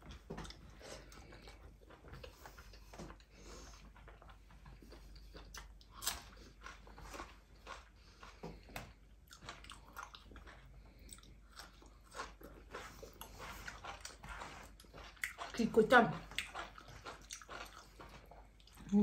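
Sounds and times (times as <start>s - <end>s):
person chewing crunchy food: 0.0s - 19.0s.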